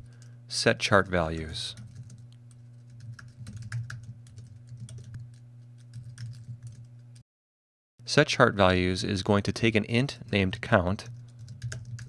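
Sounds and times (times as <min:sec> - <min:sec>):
faint low hum: 0:00.0 - 0:07.2, 0:08.1 - 0:12.0
keyboard typing clicks: 0:01.8 - 0:06.9, 0:11.2 - 0:12.0.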